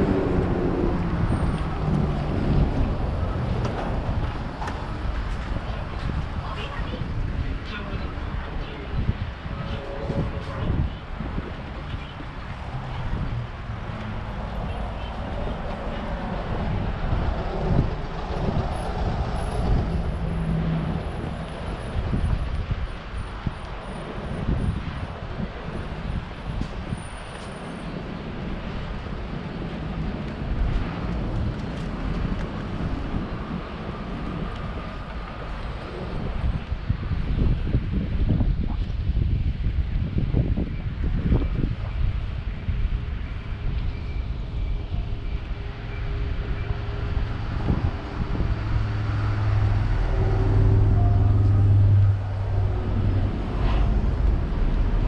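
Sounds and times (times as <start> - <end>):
bus passing: 0.0 - 37.6, 41.6 - 55.0
cars passing: 0.0 - 38.2, 41.6 - 55.0.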